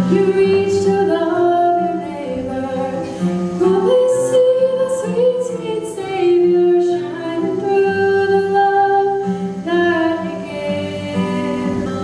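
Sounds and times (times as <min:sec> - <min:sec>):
strummed acoustic guitar: 0:00.0 - 0:12.0.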